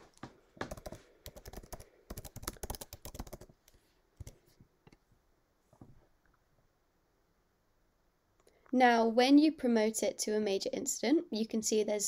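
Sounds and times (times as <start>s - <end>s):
computer keyboard typing: 0.6s - 3.6s.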